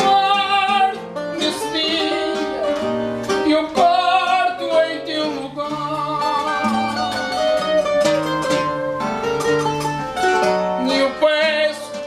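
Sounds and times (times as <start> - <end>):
classical guitar bass and chords: 0.0 - 12.0
twelve-string guitar melody: 0.0 - 12.0.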